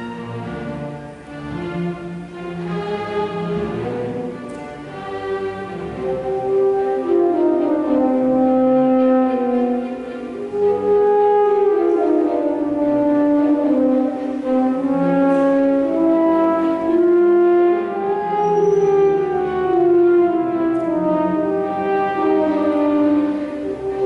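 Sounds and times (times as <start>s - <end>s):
french horn melody: 0.0s - 24.0s
orchestra playing: 0.0s - 24.0s.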